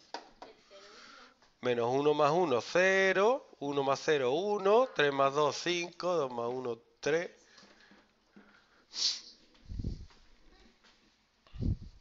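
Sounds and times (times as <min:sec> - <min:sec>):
low puff of breath: 0:07.6 - 0:10.1
man sniffing: 0:08.6 - 0:10.1.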